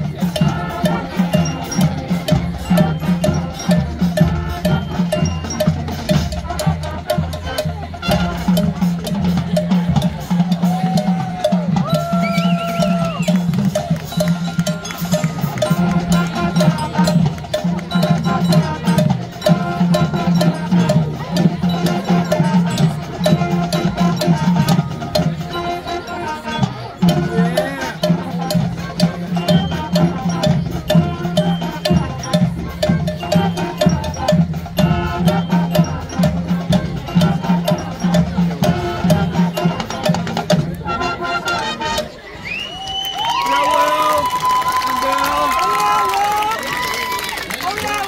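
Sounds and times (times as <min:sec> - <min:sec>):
marching band playing: 0:00.0 - 0:48.0
crowd cheering and whooping: 0:10.6 - 0:13.6, 0:42.3 - 0:48.0
whistle: 0:11.9 - 0:13.5, 0:29.4 - 0:30.0, 0:42.2 - 0:44.9.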